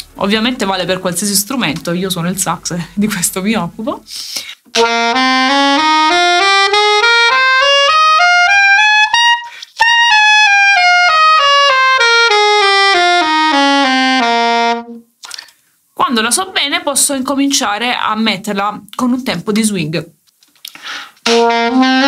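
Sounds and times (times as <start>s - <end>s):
short breath: 4.1s - 4.6s, 9.5s - 9.8s, 20.6s - 21.2s
saxophone playing a scale: 4.7s - 15.1s, 21.2s - 22.0s.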